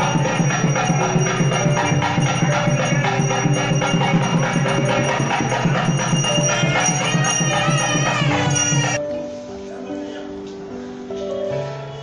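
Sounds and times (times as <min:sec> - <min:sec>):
fast steady drumbeat: 0:00.0 - 0:09.0
ringing bells: 0:00.0 - 0:09.3.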